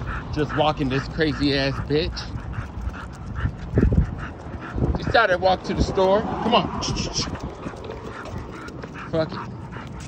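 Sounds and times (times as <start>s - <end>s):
dog panting: 0.0s - 10.0s.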